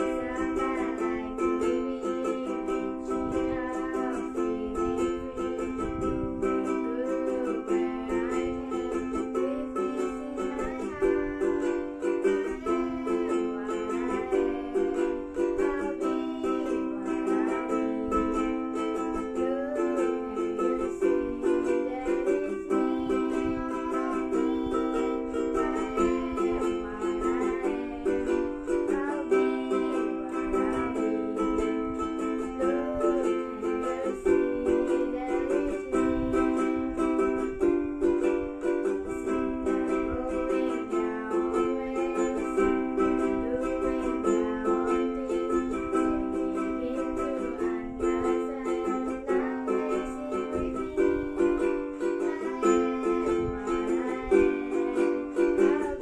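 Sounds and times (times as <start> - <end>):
ukulele playing: 0.0 - 56.0.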